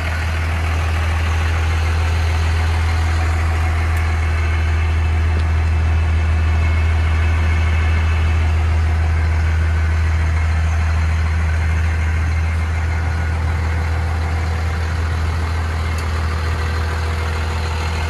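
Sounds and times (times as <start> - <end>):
diesel engine idling: 0.0 - 18.0.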